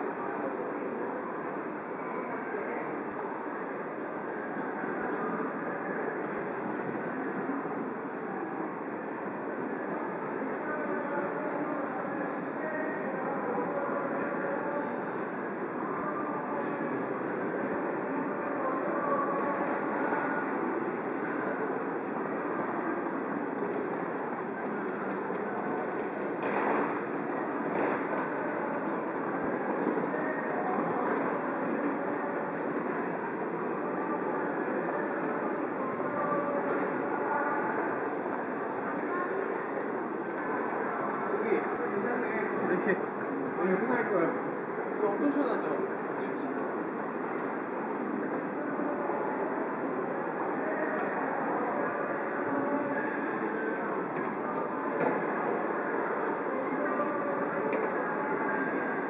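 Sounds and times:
murmur of crowd voices: 0:00.0 - 0:59.0.

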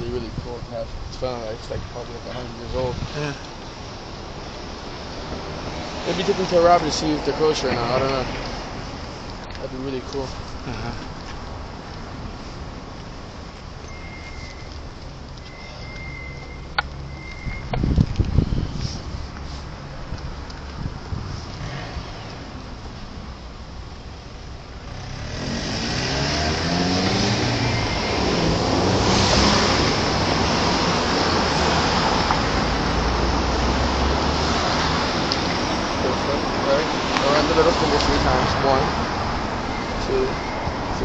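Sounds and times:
cars driving past: 0:01.3 - 0:14.7, 0:18.3 - 0:41.0.

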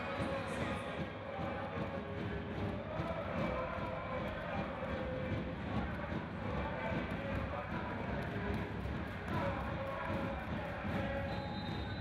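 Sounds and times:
indoor crowd din: 0:00.0 - 0:12.0.

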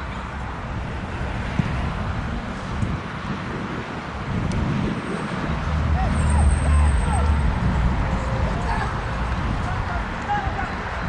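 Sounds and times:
players shouting: 0:05.8 - 0:11.0.

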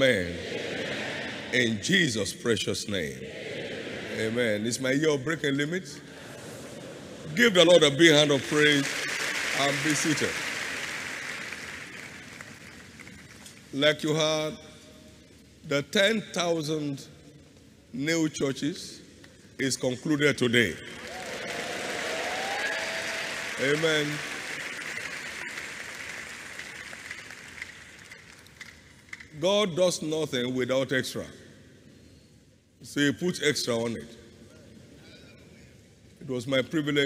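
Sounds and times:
crowd applause: 0:07.4 - 0:13.4, 0:20.8 - 0:28.8.

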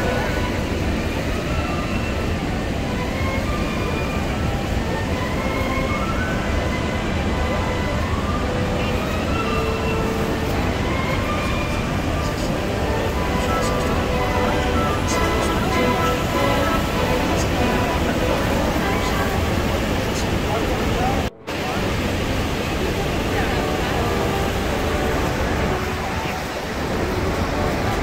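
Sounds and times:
boat engine: 0:00.0 - 0:28.0
passengers' voices: 0:00.0 - 0:28.0
waterfall rushing: 0:00.0 - 0:28.0.

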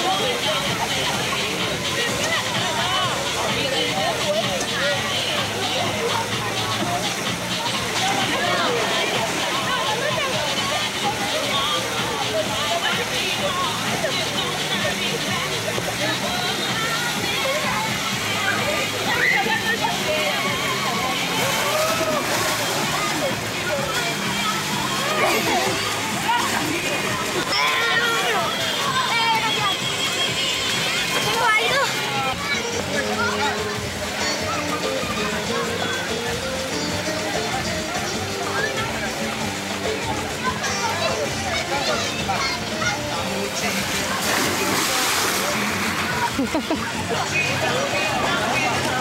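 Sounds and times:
background music: 0:00.0 - 0:49.0
splashing pool water: 0:00.0 - 0:49.0
voices calling and chattering: 0:00.0 - 0:49.0.

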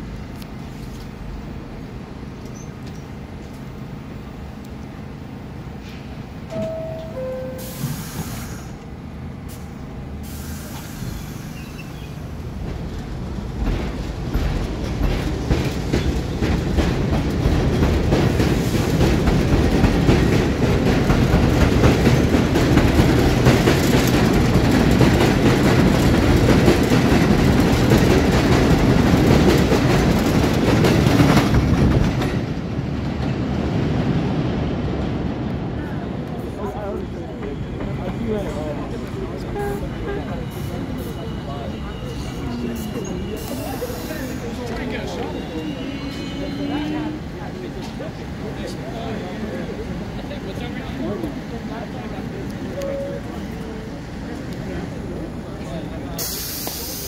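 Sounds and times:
subway train running: 0:00.0 - 0:57.0
two-note door chime: 0:06.5 - 0:07.8
train wheel clatter: 0:12.6 - 0:33.4.

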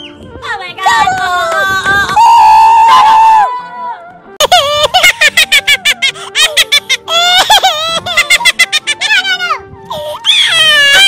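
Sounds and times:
child laughing: 0:04.4 - 0:11.0
child wailing: 0:10.2 - 0:11.0.

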